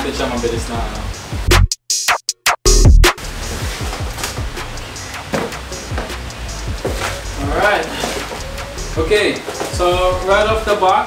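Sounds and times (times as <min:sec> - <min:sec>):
hip-hop drum machine beat: 0:00.8 - 0:11.0.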